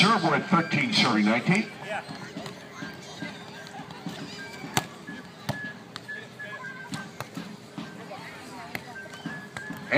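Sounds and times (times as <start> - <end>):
crowd chatter: 0.0 - 9.9.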